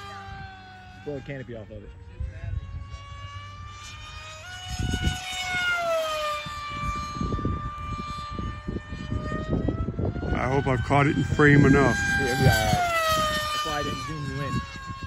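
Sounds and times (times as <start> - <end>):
low rumbling buffets: 0.0 - 15.0
model plane motor whining: 0.0 - 15.0.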